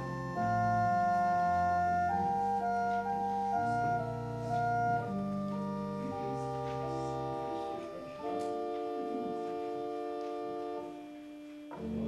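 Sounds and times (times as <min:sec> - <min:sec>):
organ playing sustained chords: 0:00.0 - 0:12.0.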